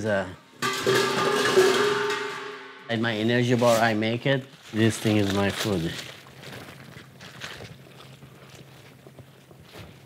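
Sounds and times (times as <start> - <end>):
plastic zip bag rustling: 3.5 - 10.0.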